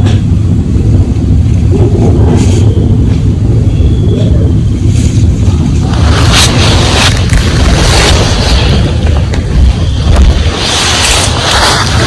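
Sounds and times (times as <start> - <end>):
low rumble: 0.0 - 12.0
hiss: 4.8 - 12.0.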